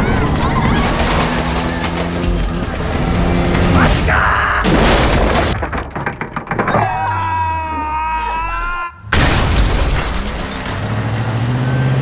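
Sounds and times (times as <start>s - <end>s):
car crash clatter: 0.0s - 6.8s, 9.1s - 11.6s
car engine revving: 0.1s - 3.9s.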